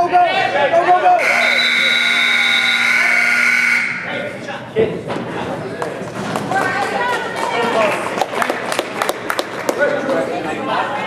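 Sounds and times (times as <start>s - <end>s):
scoreboard buzzer tone: 1.2s - 4.1s.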